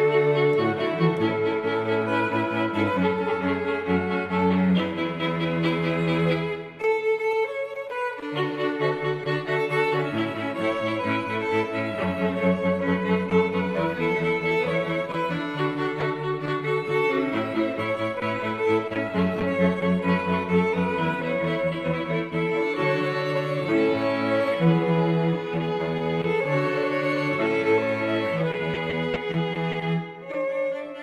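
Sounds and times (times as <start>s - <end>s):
cello: 0.0s - 31.0s
violins: 0.0s - 31.0s.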